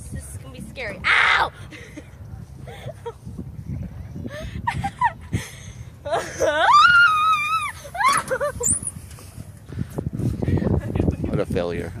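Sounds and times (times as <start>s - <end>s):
girl screaming: 6.6s - 8.3s.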